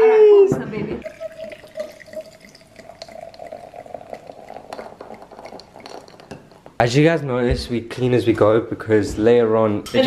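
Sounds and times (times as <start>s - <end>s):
drink fizzing: 1.0s - 6.8s
drink pouring into glass: 1.0s - 6.8s.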